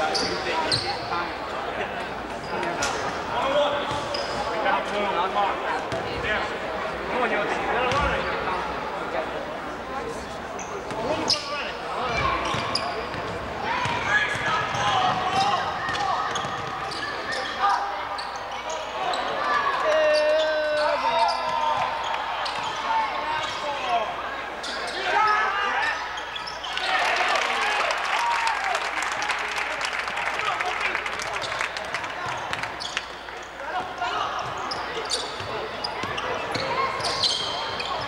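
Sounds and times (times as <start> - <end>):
sneakers squeaking: 0.0 - 1.5, 2.1 - 4.8, 7.8 - 8.6, 10.2 - 27.0, 31.3 - 38.0
players and spectators shouting: 12.0 - 31.0.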